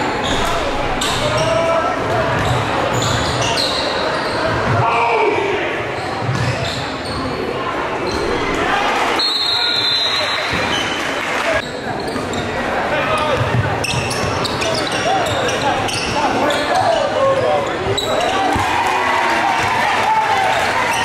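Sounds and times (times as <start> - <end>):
echoing crowd and player voices: 0.0 - 21.0.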